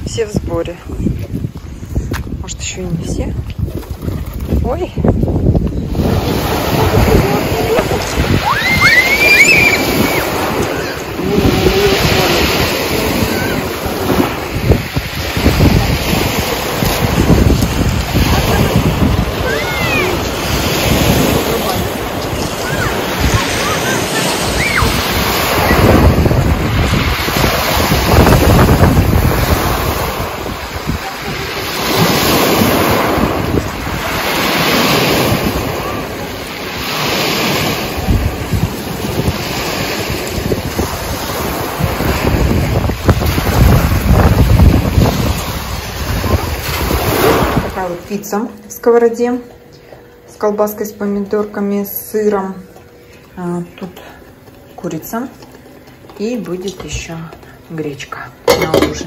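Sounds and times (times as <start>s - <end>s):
wind buffeting microphone: 0.0s - 48.0s
waves breaking on pebble beach: 4.1s - 48.0s.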